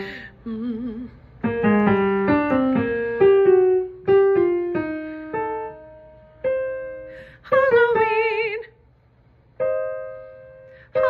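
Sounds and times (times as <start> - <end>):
piano single notes: 1.4 - 7.0.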